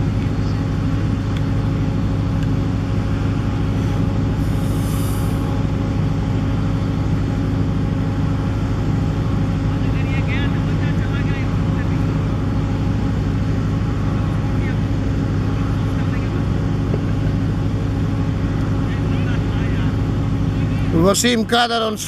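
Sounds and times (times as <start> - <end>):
low engine drone: 0.0 - 22.0.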